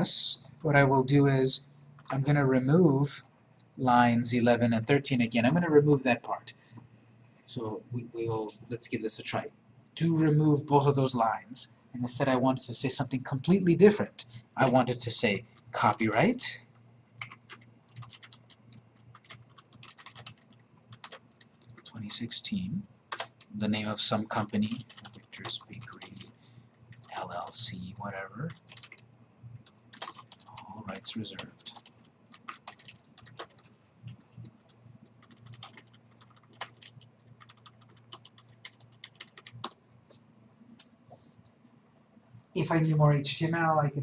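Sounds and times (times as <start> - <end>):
computer keyboard typing: 17.2 - 40.2.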